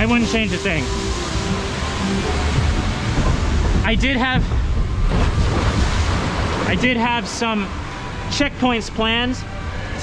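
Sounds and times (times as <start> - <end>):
water rushing along a channel: 0.0 - 10.0
wind rumble on microphone: 0.9 - 6.9.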